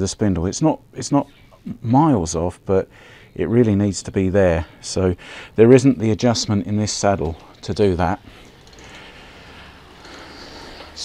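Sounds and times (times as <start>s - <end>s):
faint high whine: 0.0s - 11.0s
bike trainer hum: 5.2s - 11.0s.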